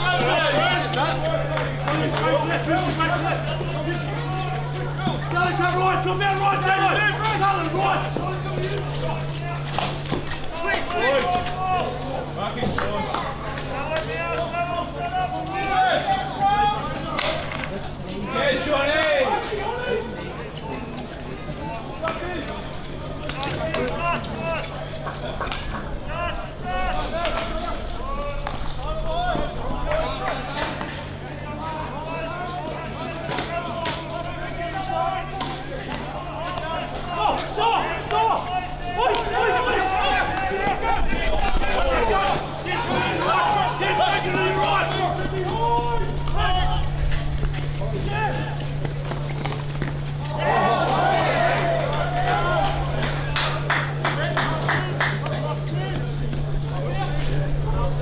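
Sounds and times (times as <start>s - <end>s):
steady low hum: 0.0s - 58.0s
voices calling and talking: 0.0s - 58.0s.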